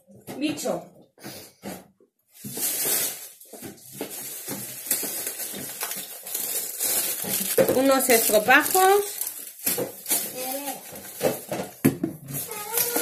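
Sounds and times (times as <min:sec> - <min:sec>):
plastic bag rustling and crinkling: 0:02.3 - 0:13.0.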